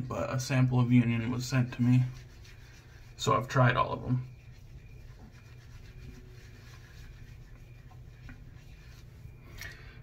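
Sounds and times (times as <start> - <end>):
low steady hum: 0.0 - 10.0
fingertips rubbing shaving lather: 0.5 - 9.3.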